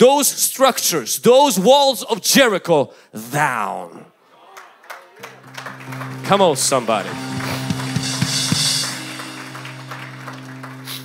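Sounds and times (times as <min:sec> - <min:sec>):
sustained keyboard chords: 0:05.4 - 0:11.0.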